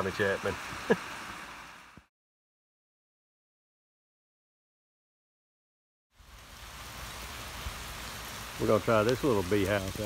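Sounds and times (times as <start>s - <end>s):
rain falling: 0.0s - 2.1s, 6.1s - 10.0s.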